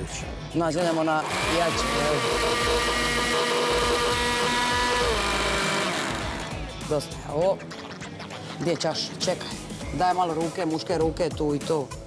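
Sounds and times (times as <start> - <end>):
blender running: 0.8 - 6.7.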